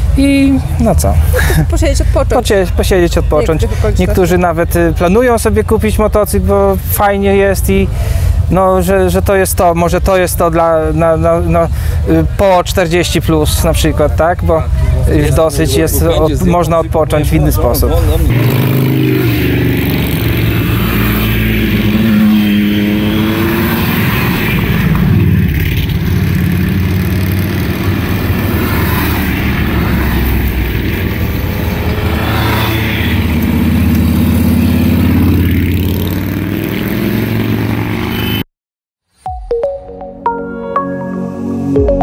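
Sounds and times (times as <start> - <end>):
motorcycles riding past: 17.8 - 38.4.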